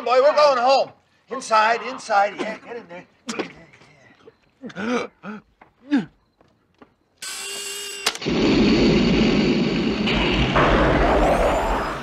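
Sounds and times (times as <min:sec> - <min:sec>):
electrical crackling buzz: 0:08.2 - 0:12.0.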